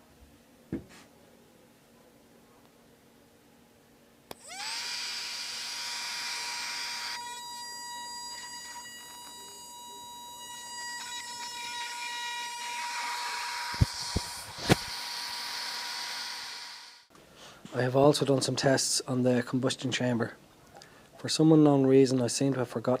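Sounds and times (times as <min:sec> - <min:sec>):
electric motor high whine: 0:04.3 - 0:17.1.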